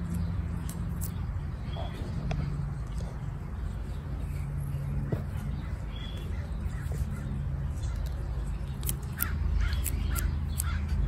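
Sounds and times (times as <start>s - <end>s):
bird calling: 4.3s - 11.0s.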